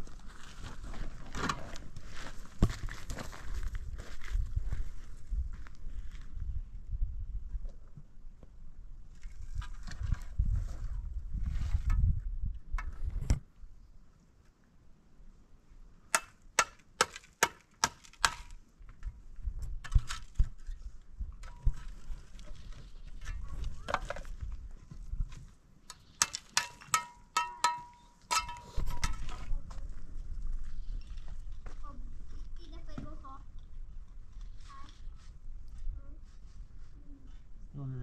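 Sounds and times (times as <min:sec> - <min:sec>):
steel tool knocking concrete block: 0:25.9 - 0:29.3.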